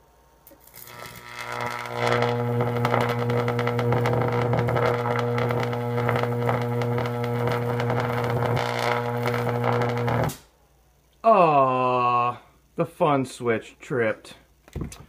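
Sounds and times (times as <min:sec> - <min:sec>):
arc crackling: 0:00.4 - 0:10.5
electric arc buzzing: 0:00.4 - 0:10.5.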